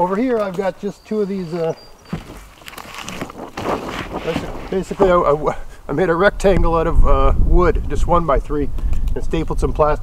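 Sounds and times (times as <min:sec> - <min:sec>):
plastic sheeting rustling: 0:02.1 - 0:05.2.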